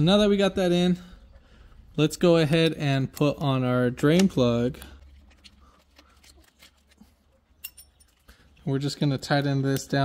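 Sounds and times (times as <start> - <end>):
metallic clinks of socket: 7.6 - 8.2.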